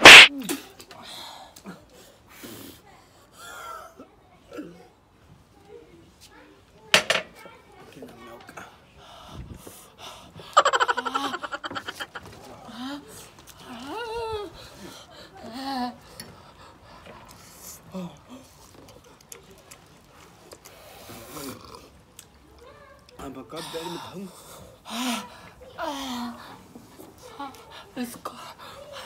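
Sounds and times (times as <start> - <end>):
sharp knock: 0.0 - 0.3
person laughing: 10.6 - 12.0.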